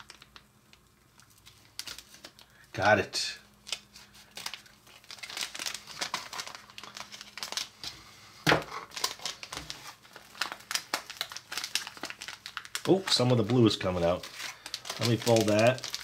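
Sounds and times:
powdered candy pouring: 0.0 - 3.4, 4.0 - 7.8, 8.8 - 16.0
plastic pouch crinkling: 0.0 - 8.0, 8.6 - 16.0.

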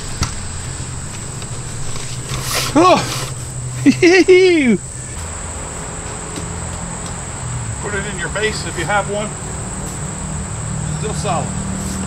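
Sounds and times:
insects chirring: 0.0 - 12.0
low background hum: 0.0 - 12.0.

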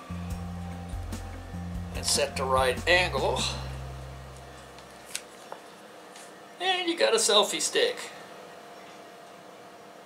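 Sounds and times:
low hum: 0.0 - 5.2.

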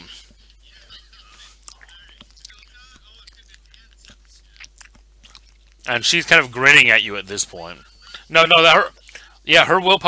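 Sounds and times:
quiet laughter: 0.0 - 1.6
mouth noises: 0.0 - 6.7.

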